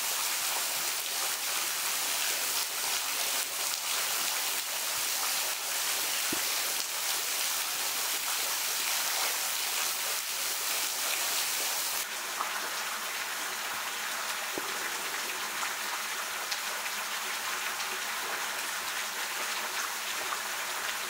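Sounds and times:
water hissing: 2.4 - 12.0.

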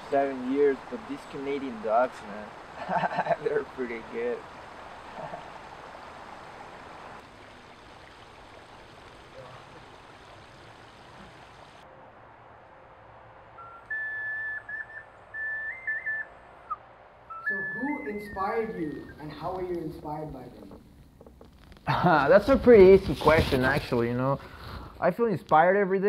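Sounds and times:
running water rushing: 0.0 - 24.3
whistled tune: 13.6 - 19.4.

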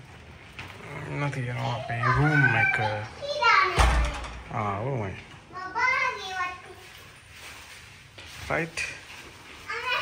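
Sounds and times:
child calling out: 1.8 - 3.8
thump: 3.8 - 4.4.

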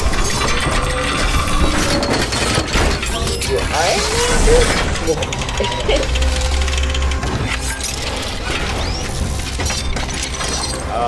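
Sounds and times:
mechanical clicks and clanks: 0.0 - 11.0.

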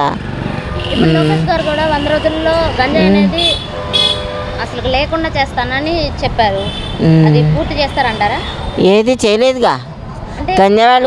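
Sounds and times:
street traffic: 0.0 - 11.0
voices: 0.0 - 11.0
vehicle horn: 0.7 - 4.8, 6.6 - 7.1.

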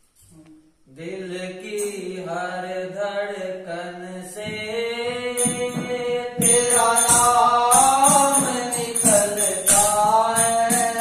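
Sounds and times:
tambourine jingles and beats: 5.0 - 11.0.

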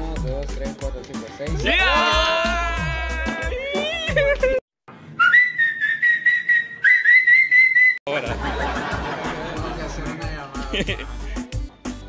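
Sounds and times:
person whistling high note: 5.2 - 8.0.

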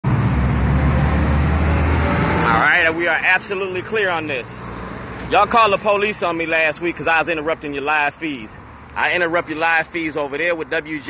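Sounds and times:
street traffic noise: 0.0 - 11.0
vehicle engine rumbling: 0.0 - 11.0.

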